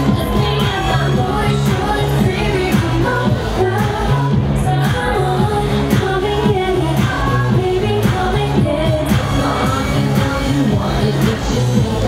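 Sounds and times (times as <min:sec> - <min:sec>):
dance beat: 0:00.0 - 0:12.0
repeating bass line: 0:00.0 - 0:12.0
woman singing: 0:00.0 - 0:12.0.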